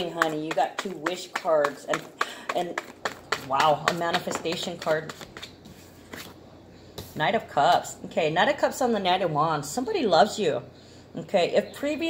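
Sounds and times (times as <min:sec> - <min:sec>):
cards sliding and tapping: 0:04.8 - 0:06.4.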